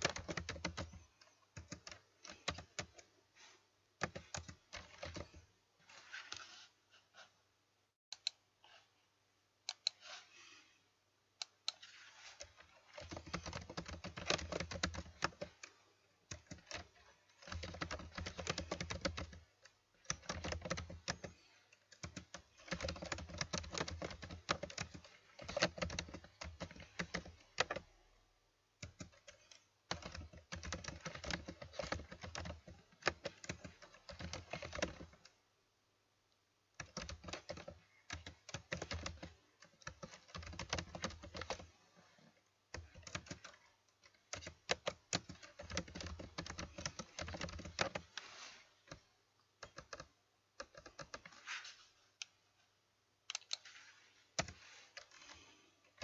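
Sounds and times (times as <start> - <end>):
computer keyboard typing: 0.0 - 3.1, 4.0 - 5.5, 11.4 - 28.0, 28.8 - 35.3, 36.7 - 41.8, 42.7 - 48.3, 49.6 - 51.4, 54.4 - 56.0.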